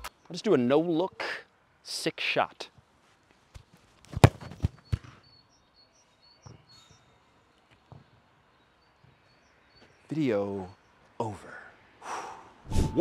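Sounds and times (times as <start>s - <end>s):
football kicked thud: 4.1s - 5.1s.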